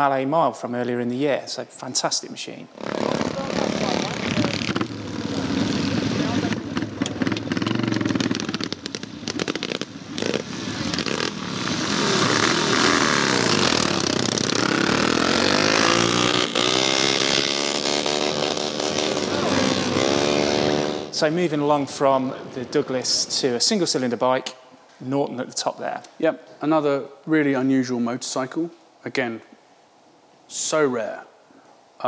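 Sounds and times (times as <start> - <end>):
motorcycle engine revving: 2.8 - 21.2.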